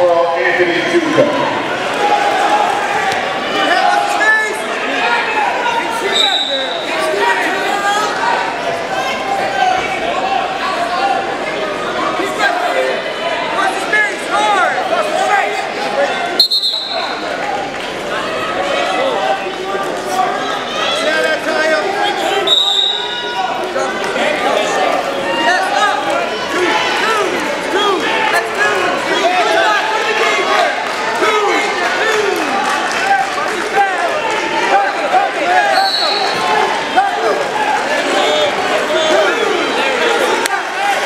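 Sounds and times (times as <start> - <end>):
crowd chatter: 0.0 - 41.0
spectators and coaches yelling: 0.0 - 41.0
referee's whistle blast: 16.4 - 17.2, 22.4 - 23.1, 35.7 - 36.4.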